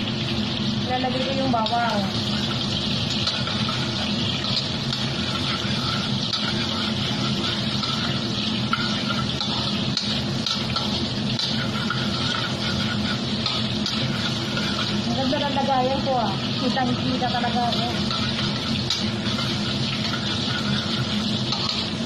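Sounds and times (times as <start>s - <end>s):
meat sizzling in hot oil: 0.0s - 22.0s.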